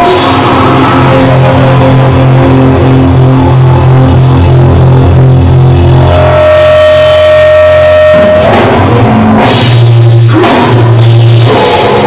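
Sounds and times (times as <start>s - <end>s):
high guitar note ringing: 0.0s - 9.7s
loud thrash band playing: 0.0s - 12.0s.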